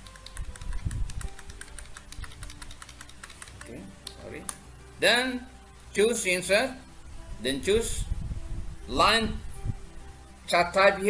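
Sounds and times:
keyboard keys clicking: 0:00.0 - 0:04.6.

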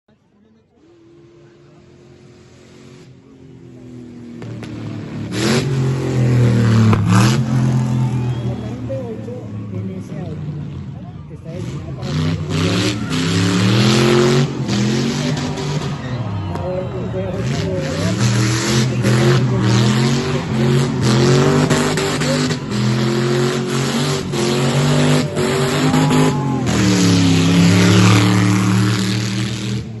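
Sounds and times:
race car engine revving: 0:00.8 - 0:30.0.

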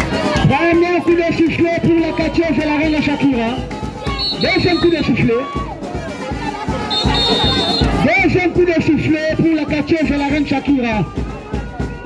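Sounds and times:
loud music with a beat: 0:00.0 - 0:12.0
whistle blast: 0:04.0 - 0:05.3, 0:06.9 - 0:08.0.

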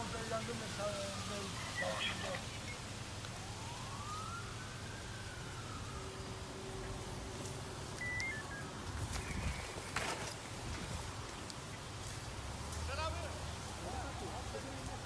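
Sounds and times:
emergency siren wailing: 0:00.0 - 0:09.2.

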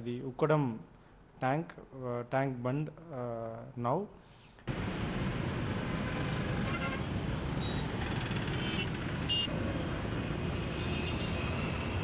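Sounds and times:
road traffic noise: 0:04.7 - 0:12.0
vehicle horn toots: 0:08.6 - 0:09.5.

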